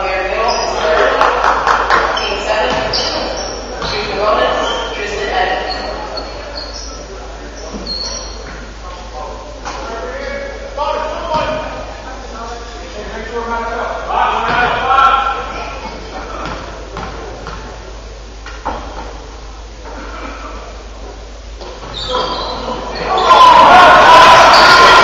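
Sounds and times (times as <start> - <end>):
voices shouting in a hall: 0.0 - 16.9, 19.6 - 25.0.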